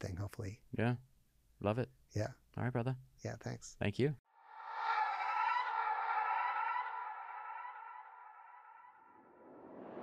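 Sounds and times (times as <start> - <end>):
wavering siren-like tone: 4.4 - 10.0.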